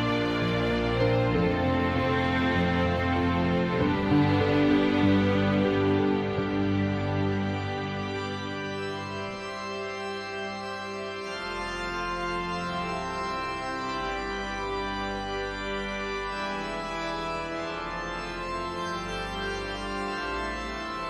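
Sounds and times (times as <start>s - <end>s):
organ playing slow held chords: 0.0s - 21.0s.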